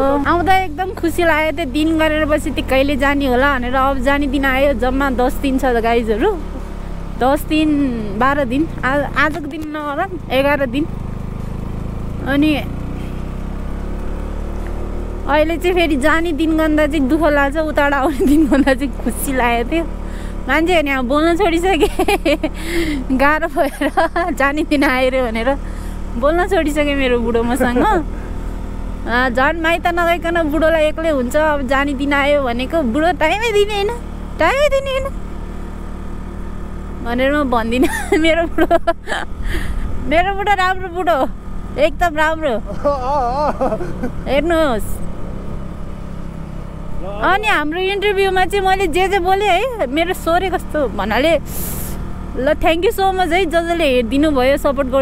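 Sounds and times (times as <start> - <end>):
motorcycle engine running: 0.0 - 55.0
wind and road noise: 0.0 - 55.0.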